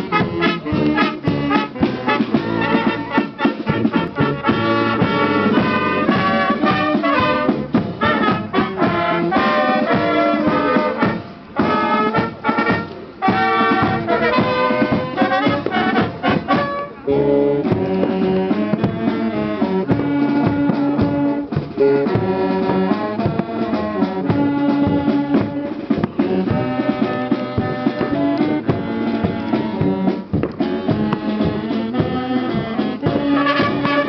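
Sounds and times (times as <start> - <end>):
brass band playing: 0.0 - 34.0.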